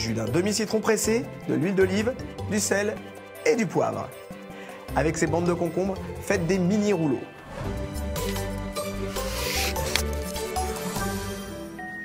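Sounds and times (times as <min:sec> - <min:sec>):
background music: 0:00.0 - 0:12.0
book page turning: 0:08.2 - 0:10.5.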